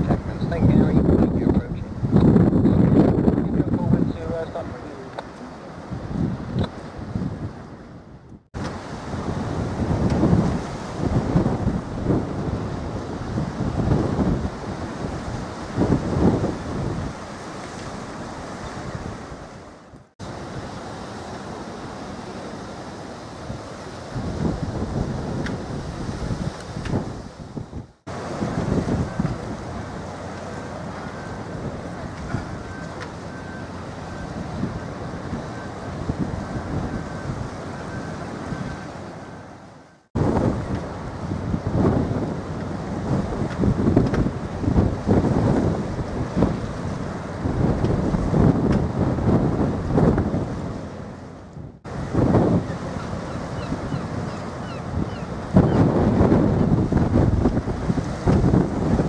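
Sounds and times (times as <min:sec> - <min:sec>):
wind buffeting microphone: 0:00.0 - 0:21.0, 0:23.3 - 0:39.2, 0:40.1 - 0:51.0, 0:51.6 - 0:59.0
sea waves washing: 0:00.0 - 0:59.0.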